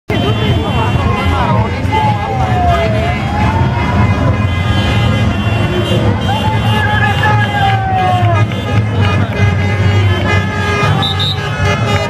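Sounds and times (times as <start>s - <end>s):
cars passing slowly: 0.1s - 12.0s
crowd voices: 0.1s - 12.0s
street noise: 0.1s - 12.0s.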